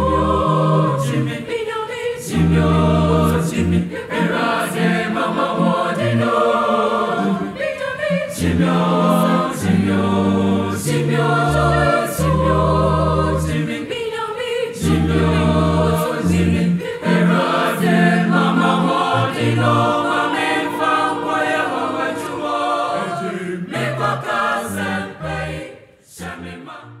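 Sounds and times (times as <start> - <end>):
choir singing in harmony: 0.0 - 27.0.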